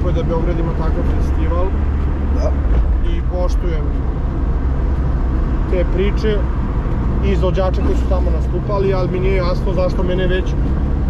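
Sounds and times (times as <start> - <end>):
car engine and road drone: 0.0 - 11.0.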